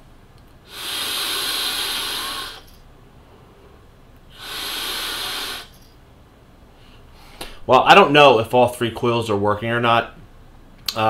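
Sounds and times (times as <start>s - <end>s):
airy hiss of vape drag: 0.6s - 2.8s, 4.3s - 5.9s
hiss of vapour breathed out: 0.6s - 5.9s.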